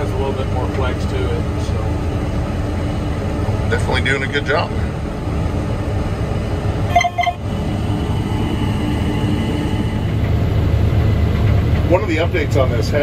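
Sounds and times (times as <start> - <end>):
combine engine hum: 0.0 - 13.0
short pitched sound: 6.9 - 7.7.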